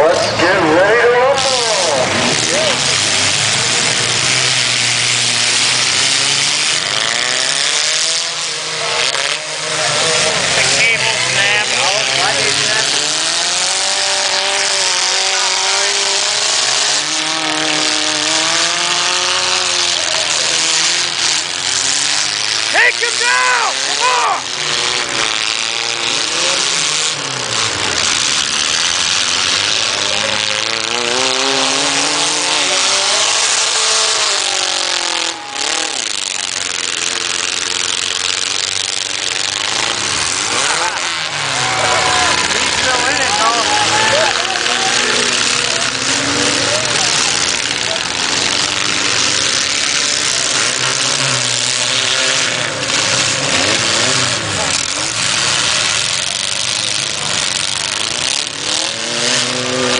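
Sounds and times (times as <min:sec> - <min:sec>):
crowd din: 0:00.0 - 0:06.9, 0:07.5 - 0:25.6, 0:31.4 - 0:51.2
car engines revving: 0:00.0 - 0:59.9.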